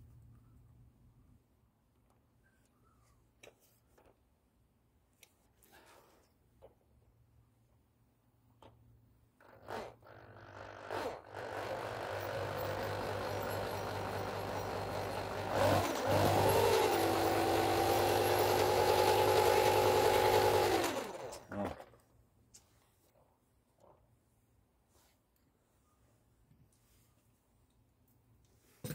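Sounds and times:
electric drill whining: 9.4s - 21.7s.

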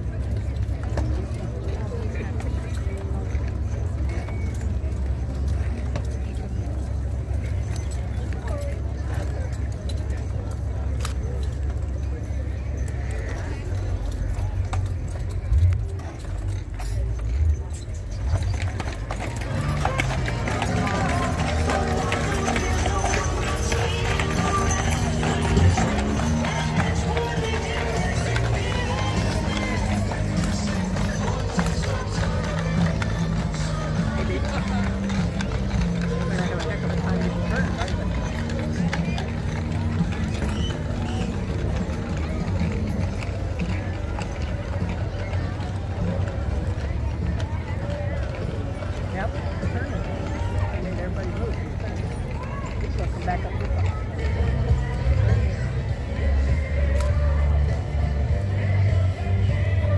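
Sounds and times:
crowd voices: 0.0s - 59.9s
hooves clip-clopping on asphalt: 0.0s - 59.9s
music: 3.6s - 59.9s.

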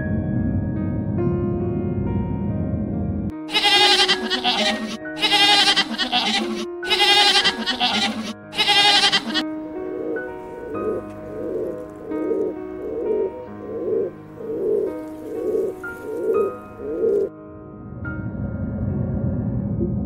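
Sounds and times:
goat bleating: 3.5s - 9.4s
pigeons cooing: 7.3s - 17.3s.

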